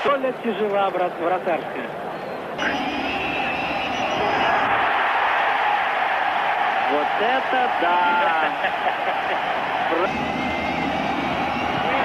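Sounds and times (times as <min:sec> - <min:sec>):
stadium crowd din: 0:00.0 - 0:12.0
thin high tone: 0:02.6 - 0:04.6.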